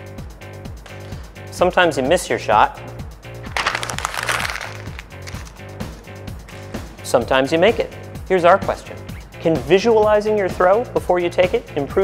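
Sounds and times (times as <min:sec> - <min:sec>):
background music: 0:00.0 - 0:12.0
paper being crumpled: 0:03.5 - 0:05.6.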